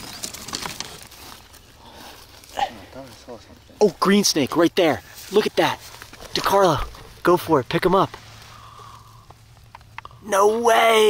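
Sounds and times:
dry branches rattling and scraping: 0.0s - 10.0s.

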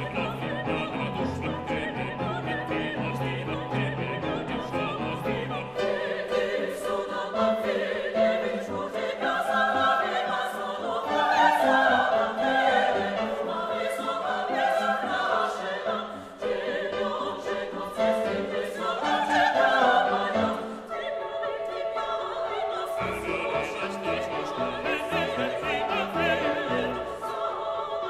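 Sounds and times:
operatic choir and soloists singing: 0.0s - 28.0s
pianos: 0.0s - 28.0s.

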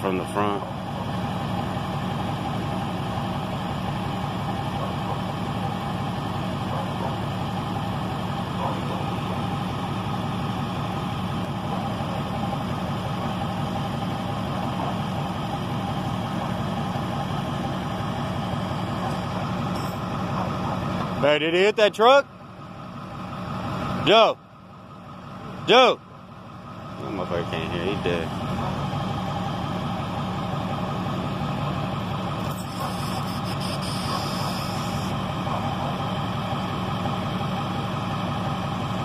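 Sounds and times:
truck engine idling: 0.0s - 39.0s.

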